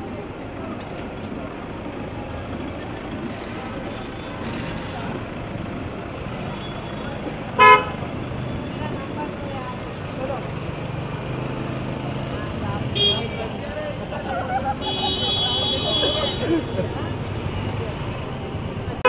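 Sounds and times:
street traffic noise: 0.0 - 19.0
voices: 0.0 - 19.0
car horn toot: 7.6 - 8.0, 13.0 - 13.4, 14.8 - 16.6.

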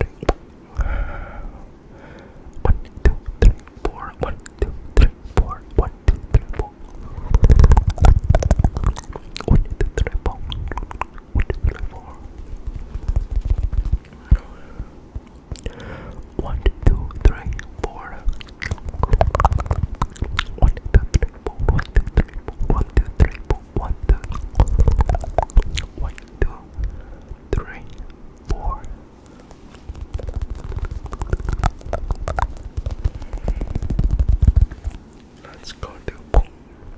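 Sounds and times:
close whispering: 2.5 - 12.4, 15.6 - 26.8, 27.5 - 34.2, 34.8 - 36.6
muffled low thumps: 4.9 - 11.8, 18.8 - 26.2, 29.9 - 35.0
sharp clicks and taps: 29.9 - 35.0.

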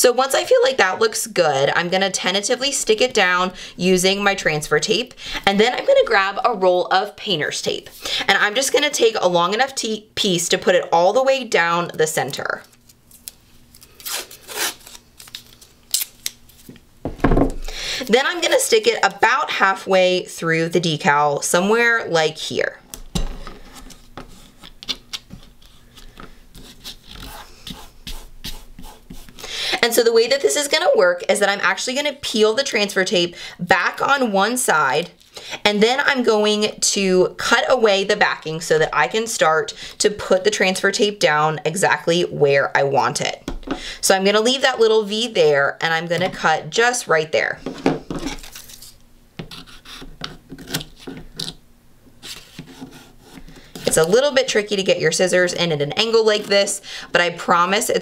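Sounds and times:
tape clicking and crackling: 12.3 - 16.8
paper and tape rubbing: 13.1 - 16.7, 23.7 - 29.4, 48.3 - 51.6, 52.2 - 54.2.

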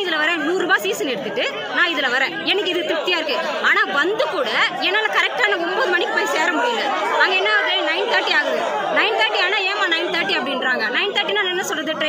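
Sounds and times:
voices chattering: 0.0 - 12.0
woman talking: 0.0 - 12.0.

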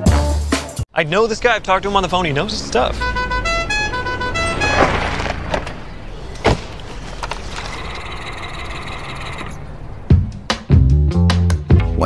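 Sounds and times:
musical car horn tune: 1.7 - 6.0.

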